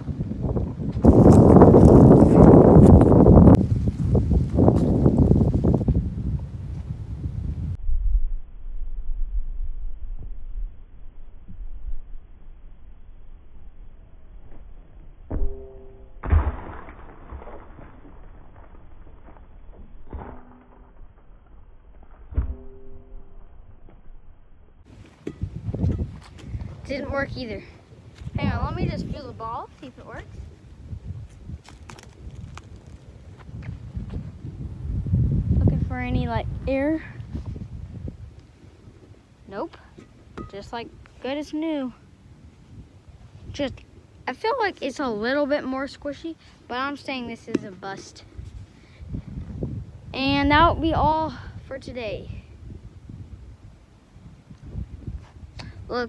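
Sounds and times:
wind buffeting microphone: 0:00.0 - 0:10.4, 0:24.9 - 0:56.0.

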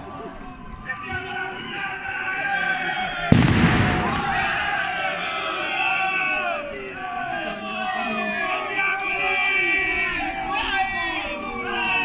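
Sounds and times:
group of voices shouting: 0:00.0 - 0:12.0
loud bang: 0:03.3 - 0:04.9.

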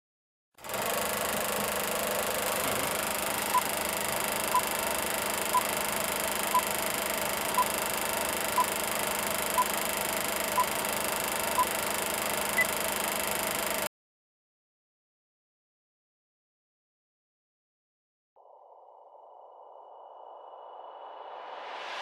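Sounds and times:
film projector whirring: 0:00.6 - 0:13.9
short high beeps: 0:05.4 - 0:05.9, 0:07.4 - 0:08.8, 0:09.5 - 0:12.8.

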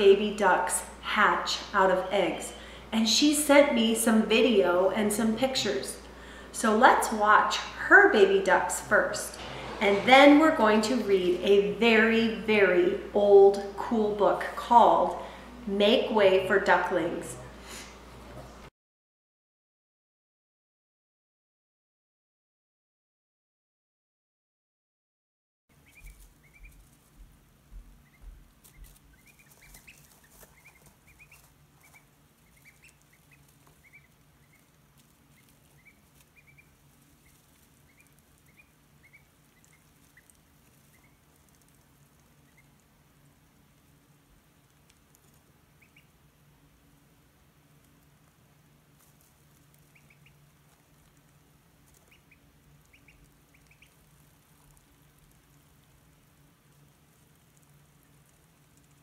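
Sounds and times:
ducklings peeping: 0:00.0 - 0:09.6, 0:25.7 - 0:59.0
steady low hum: 0:00.0 - 0:18.7, 0:25.7 - 0:59.0.

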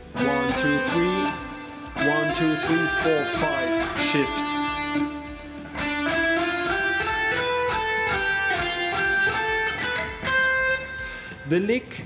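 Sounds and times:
electric guitar lick: 0:00.0 - 0:11.5.

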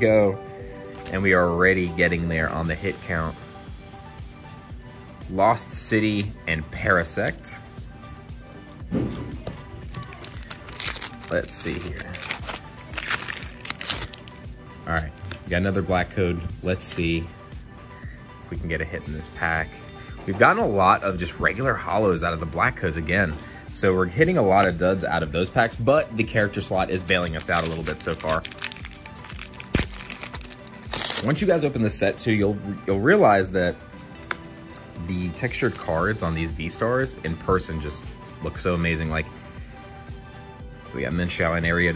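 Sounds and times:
background music: 0:00.0 - 0:41.9
foil wrapper crinkling: 0:09.9 - 0:14.4, 0:27.0 - 0:31.4.

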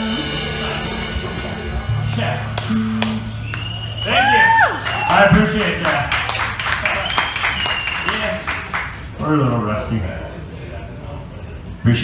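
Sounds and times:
electric guitar sustaining: 0:00.0 - 0:04.0
deep bass note: 0:00.0 - 0:04.3.

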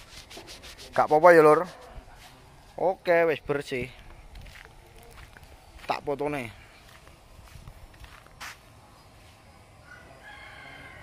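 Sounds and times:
outdoor background noise: 0:00.0 - 0:11.0
distant rooster crowing: 0:09.7 - 0:11.0.

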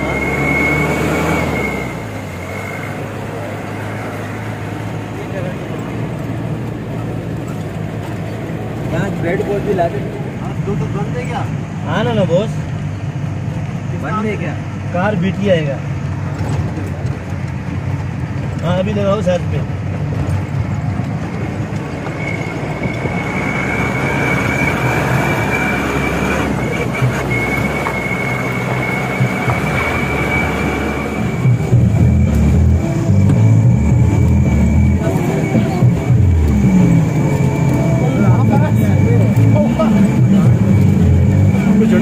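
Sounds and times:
high-pitched whine: 0:00.0 - 0:05.5, 0:21.6 - 0:42.0
car engine under load: 0:00.0 - 0:42.0.

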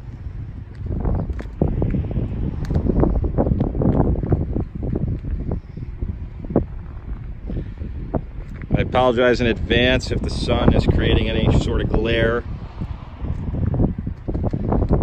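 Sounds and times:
wind buffeting microphone: 0:00.0 - 0:15.0.

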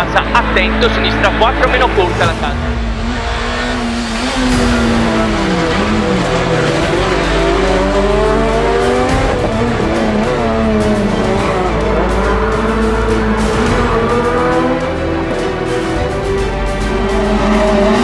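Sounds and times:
rally car engine revving: 0:00.0 - 0:18.0.

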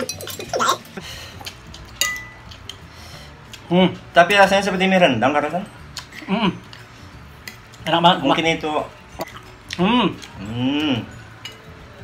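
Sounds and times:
fork clinking on a plate: 0:02.0 - 0:02.6.

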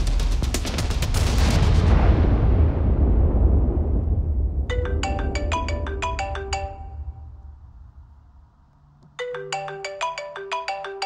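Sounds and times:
mobile phone ringtone: 0:04.7 - 0:07.4, 0:09.2 - 0:11.0.

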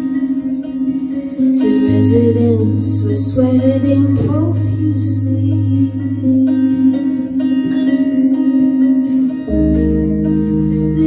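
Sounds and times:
electric guitar sustained notes: 0:00.0 - 0:11.0
electronic keyboard sustained notes: 0:00.0 - 0:11.0.

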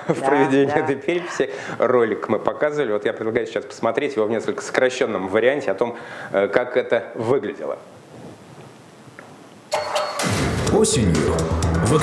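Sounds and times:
studio room hiss: 0:00.0 - 0:12.0
loud soundtrack music: 0:09.8 - 0:12.0.

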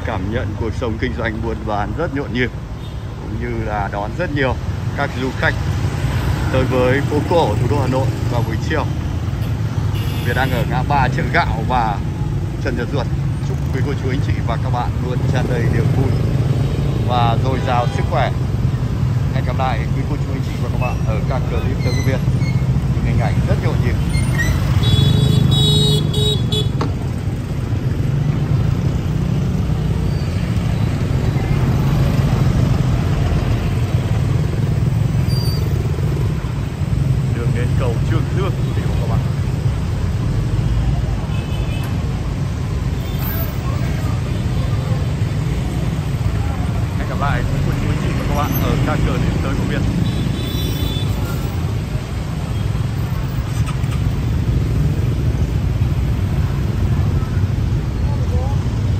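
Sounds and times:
cars passing: 0:00.0 - 0:58.9
motorbikes passing: 0:00.0 - 0:58.9
passers-by talking: 0:54.8 - 0:58.9.

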